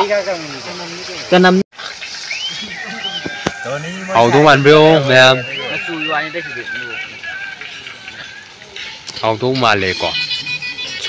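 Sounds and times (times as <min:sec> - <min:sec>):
chicken sizzling in a wok: 0:00.0 - 0:04.5.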